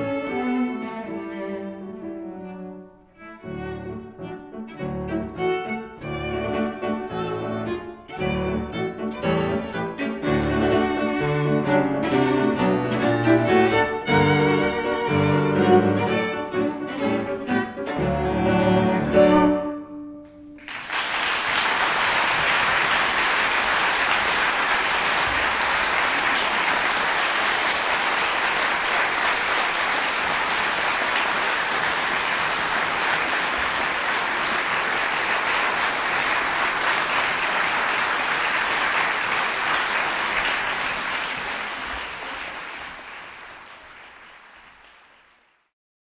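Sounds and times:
audience applauding: 0:20.6 - 0:45.7.

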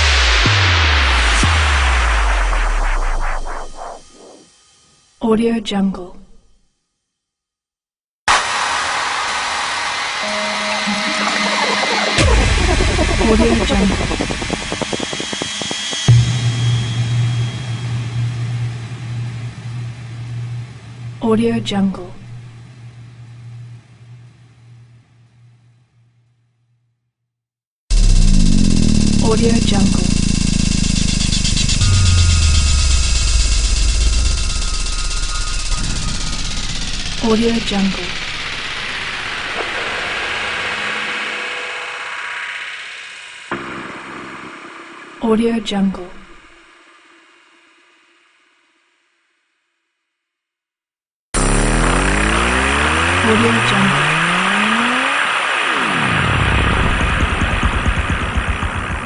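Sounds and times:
synthesized electronic sweep: 0:00.0 - 0:04.6, 0:08.3 - 0:18.4, 0:27.9 - 0:45.1, 0:51.4 - 0:59.0
deep steady drone: 0:10.2 - 0:25.6, 0:27.9 - 0:42.2, 0:56.1 - 0:59.0.

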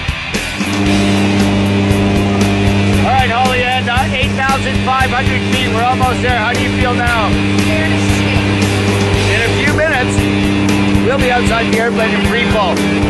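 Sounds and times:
rock music with drums: 0:00.0 - 0:13.0
plane engine drone in cabin: 0:00.6 - 0:13.0
voices talking: 0:00.7 - 0:13.0.

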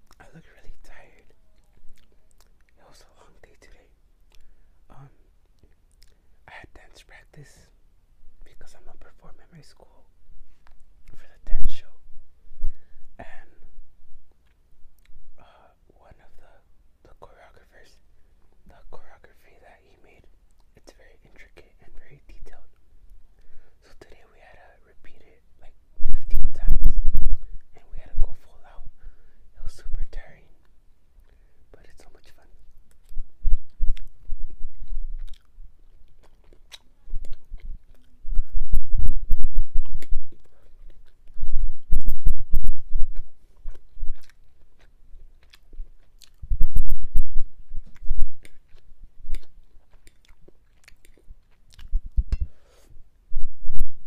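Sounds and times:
soft whispering: 0:00.0 - 0:07.8, 0:08.4 - 0:12.1, 0:12.8 - 0:13.8, 0:15.4 - 0:22.8, 0:23.5 - 0:32.8, 0:36.5 - 0:44.0
chewing mouth clicks and smacks: 0:32.2 - 0:38.5, 0:39.8 - 0:41.4, 0:43.1 - 0:46.5, 0:47.8 - 0:52.5.

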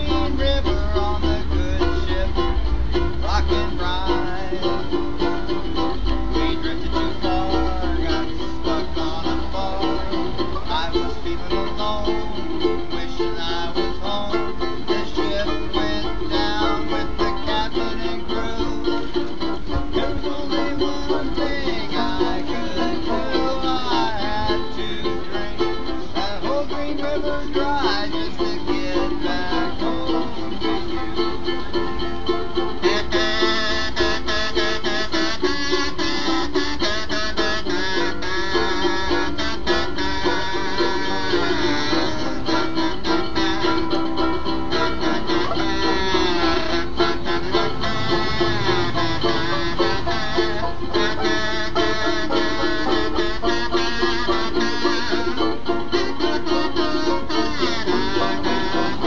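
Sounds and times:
banjo: 0:00.0 - 0:59.0
ukulele: 0:00.0 - 0:59.0
buzzy sliding horn melody: 0:32.8 - 0:59.0.

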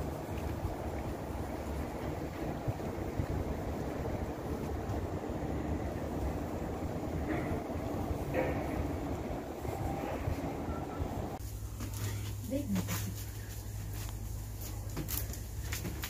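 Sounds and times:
wind buffeting microphone: 0:00.0 - 0:11.4
harbour noise: 0:00.0 - 0:12.8.

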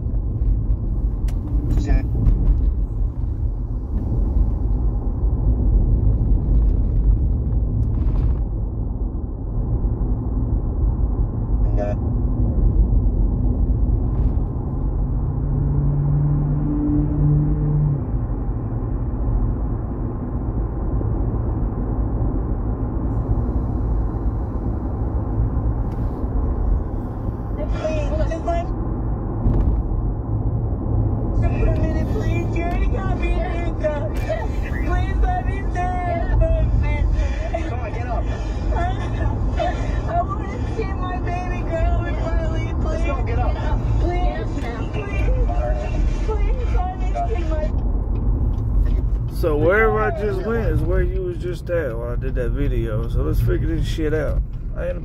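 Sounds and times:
road and engine rumble in car: 0:00.0 - 0:55.0.

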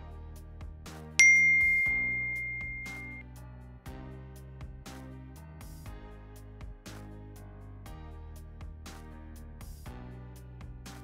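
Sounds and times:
loud bell-like ding: 0:01.2 - 0:03.2.

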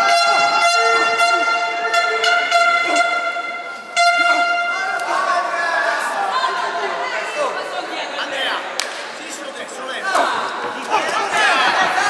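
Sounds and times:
air horn note: 0:00.0 - 0:04.9
sharp knocks or claps: 0:08.8 - 0:09.2.

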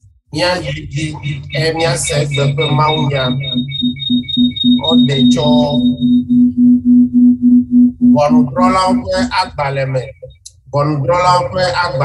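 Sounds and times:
thin high electronic tone: 0:00.4 - 0:10.5
low pulsing electronic beeps: 0:00.4 - 0:12.0.

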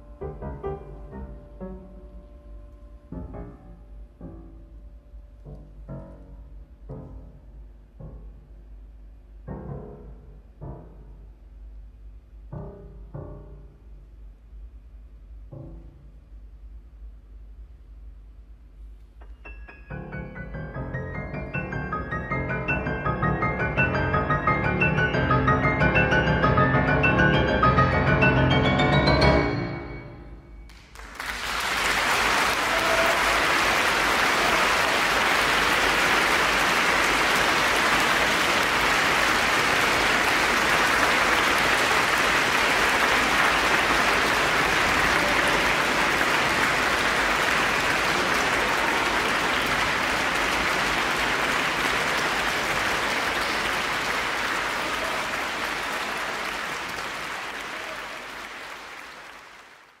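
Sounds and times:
audience applauding: 0:30.7 - 1:00.0.

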